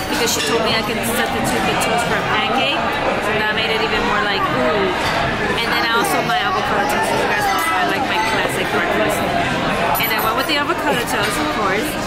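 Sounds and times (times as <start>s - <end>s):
woman talking: 0.0s - 4.9s, 5.6s - 9.3s, 10.0s - 12.0s
restaurant background chatter: 0.0s - 12.0s.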